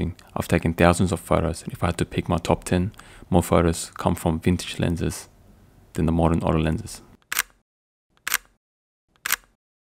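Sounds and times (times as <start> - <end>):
camera shutter clicks: 7.3 - 7.6, 8.2 - 8.5, 9.2 - 9.6.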